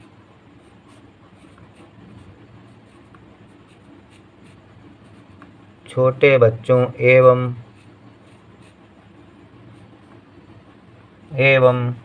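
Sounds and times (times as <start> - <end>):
pen scratching on paper: 0.0 - 5.6, 6.6 - 10.6.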